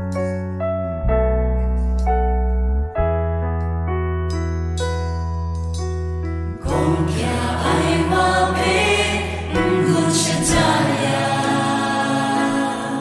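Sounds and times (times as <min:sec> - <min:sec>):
electric keyboard chords: 0:00.0 - 0:13.0
group singing with accompaniment: 0:06.6 - 0:13.0.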